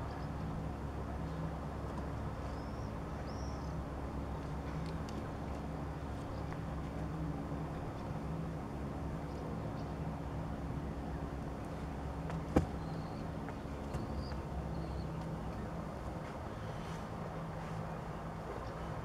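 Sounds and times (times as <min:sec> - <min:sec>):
distant motor humming: 0:00.0 - 0:19.0.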